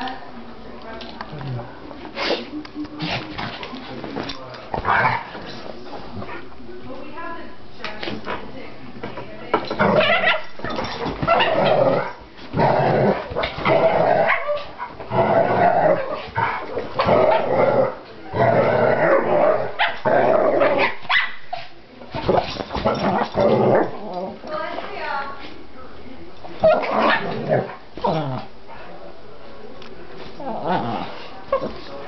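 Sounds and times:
dogs growling while play-fighting: 9.7 - 20.8, 22.2 - 24.5, 26.6 - 28.6, 30.2 - 31.8.

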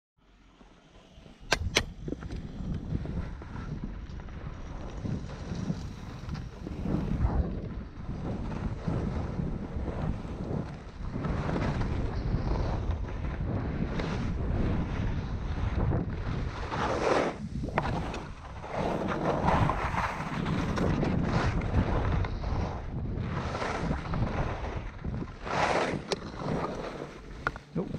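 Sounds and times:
wind on microphone: 1.2 - 27.9
ski edges scraping snow: 4.7 - 27.9.

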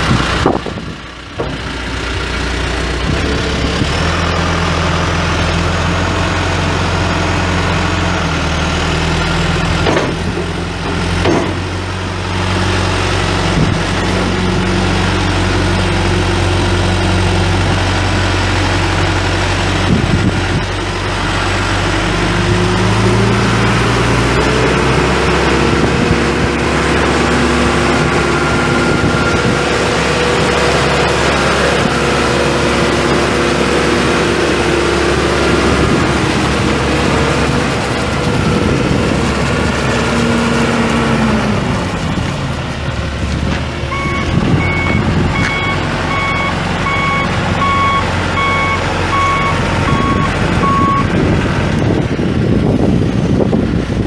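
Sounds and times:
diesel engine revving: 0.0 - 54.0
backup alarm beeping: 43.9 - 51.1.

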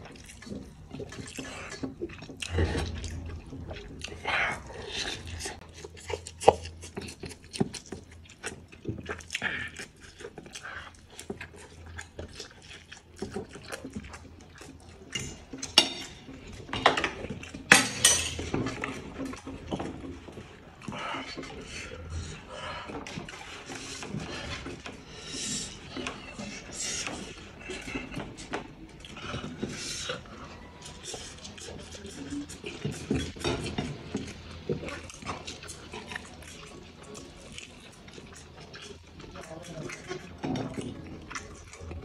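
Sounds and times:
person eating noisily: 0.0 - 42.0
fork scraping a plate: 15.1 - 20.6, 29.3 - 36.3.

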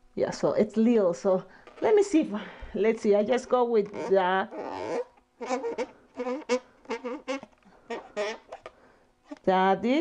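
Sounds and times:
marker squeaking on balloon: 3.3 - 9.5.

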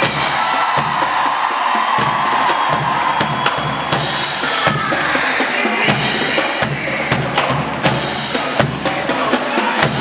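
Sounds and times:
crowd noise: 0.0 - 10.0
drum strikes: 0.0 - 10.0
marching band playing: 0.0 - 10.0.

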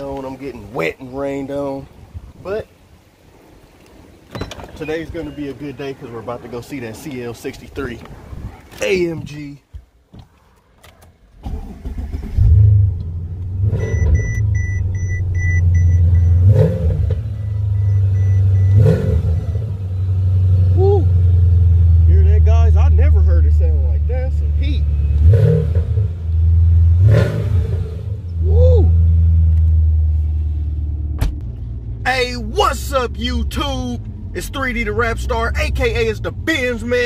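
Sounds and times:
car engine starting and revving: 11.4 - 37.0
electronic beeps: 13.8 - 16.5, 17.2 - 20.1.

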